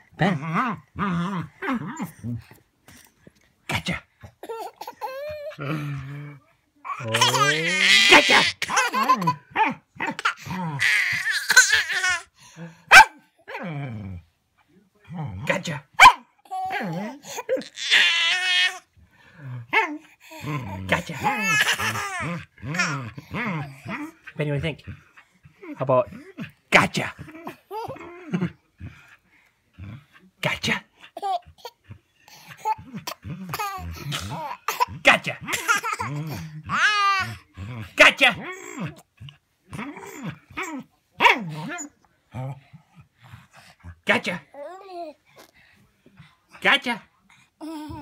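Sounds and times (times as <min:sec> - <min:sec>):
baby laughing: 0:04.4 - 0:05.6, 0:06.9 - 0:12.3, 0:20.3 - 0:24.2, 0:27.4 - 0:28.4, 0:31.2 - 0:37.4
baby squealing laugh: 0:07.0 - 0:09.4, 0:10.2 - 0:12.2, 0:21.2 - 0:23.0.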